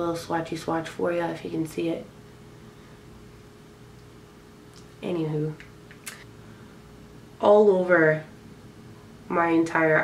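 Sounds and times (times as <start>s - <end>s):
faint hum: 0.0s - 10.0s
low hiss: 0.0s - 10.0s.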